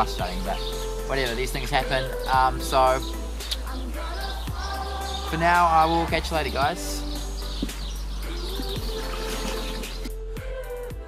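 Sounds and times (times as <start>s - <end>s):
background music with sustained notes: 0.0s - 11.0s.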